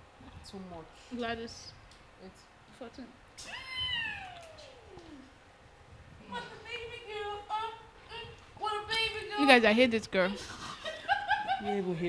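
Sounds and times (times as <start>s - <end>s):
woman's falling wail: 3.4s - 5.3s.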